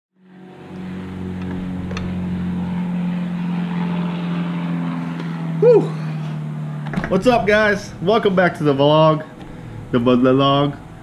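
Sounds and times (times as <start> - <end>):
steady low hum with hiss: 5.1 - 11.0
man shouting: 5.6 - 6.0.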